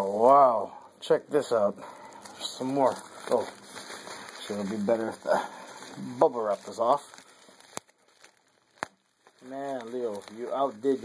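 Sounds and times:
plastic packaging rustling: 1.0s - 11.0s
bubble wrap clicks: 2.1s - 11.0s.

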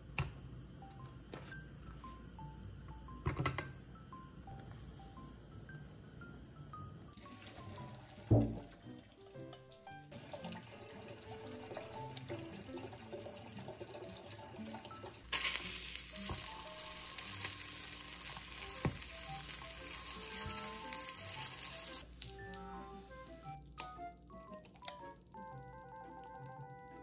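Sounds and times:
soft background music: 0.7s - 27.0s
crepes sizzling in oil: 10.1s - 22.0s.

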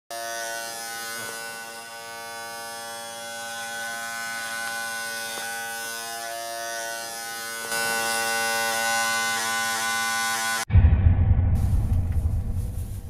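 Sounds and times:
electric hair clippers buzzing: 0.1s - 10.6s.

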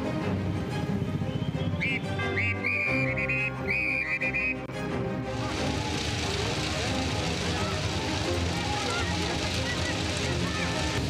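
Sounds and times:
crowd voices: 4.6s - 11.0s.

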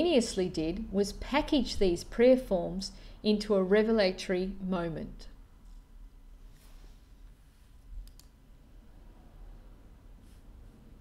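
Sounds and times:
low room hum: 0.0s - 11.0s
faint clicks: 8.0s - 8.3s.

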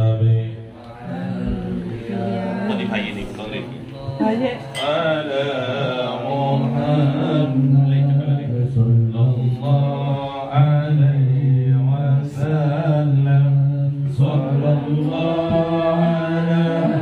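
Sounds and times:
men chanting in unison: 0.0s - 17.0s.

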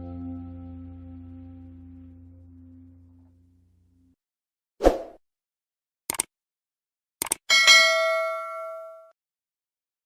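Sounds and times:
short clicks: 6.1s - 6.3s, 7.2s - 7.4s
bell-like ding: 7.5s - 9.2s.

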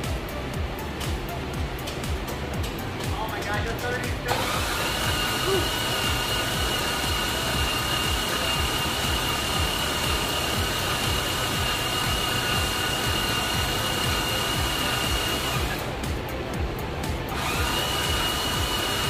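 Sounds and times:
machine whirring with high whine: 0.0s - 19.0s.

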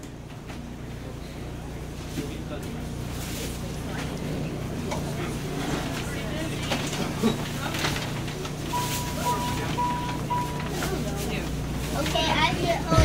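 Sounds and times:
train running low rumble: 0.0s - 13.0s.

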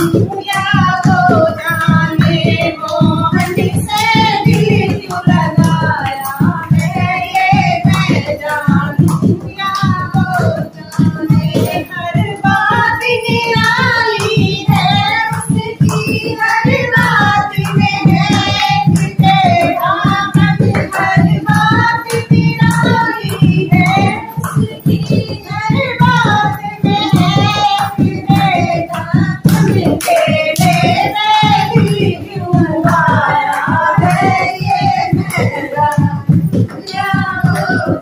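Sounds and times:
fast drum beat: 0.0s - 38.0s
hand clapping: 0.0s - 38.0s
woman singing: 0.0s - 38.0s.

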